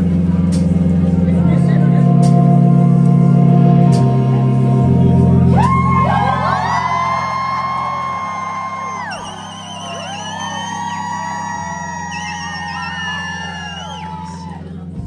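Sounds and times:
held bass notes: 0.0 - 15.0
live band chords: 0.0 - 15.0.

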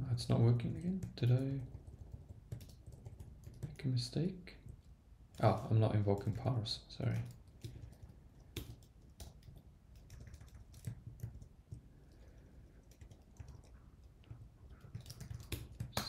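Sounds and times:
computer keyboard typing: 0.7 - 4.0, 4.6 - 16.0.

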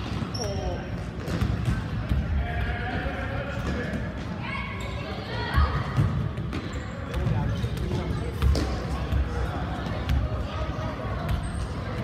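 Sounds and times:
voices echoing in gym: 0.0 - 12.0
ball kicked and thudding on gym floor: 0.2 - 2.3, 5.5 - 10.3.

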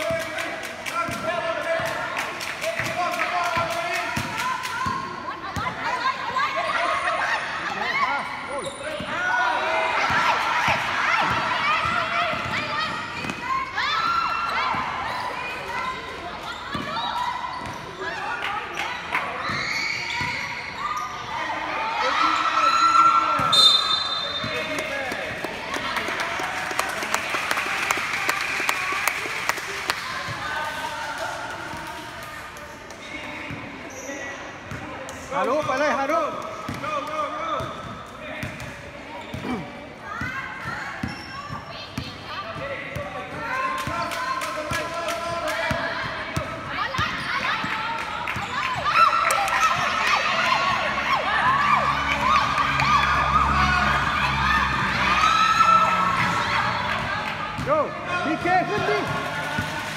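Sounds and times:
people shouting: 48.8 - 57.2.

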